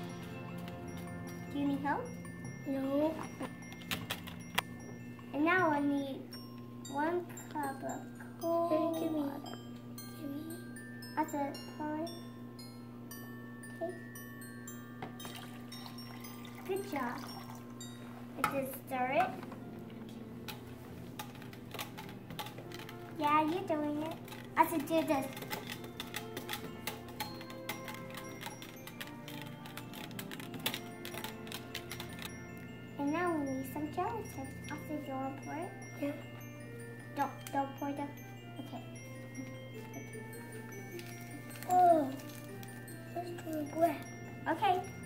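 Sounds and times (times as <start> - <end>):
bell-like chiming music: 0.0 - 45.0
child's voice: 1.5 - 3.4, 5.3 - 6.3, 6.9 - 10.6, 11.2 - 12.2, 18.4 - 19.4, 23.2 - 25.4, 33.0 - 36.4, 37.1 - 39.0, 41.6 - 42.4, 43.1 - 44.9.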